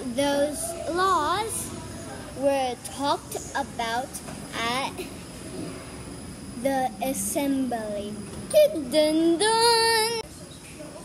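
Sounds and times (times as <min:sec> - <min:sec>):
girl singing wordless notes: 0:00.0 - 0:01.7, 0:02.4 - 0:05.1, 0:06.6 - 0:10.3.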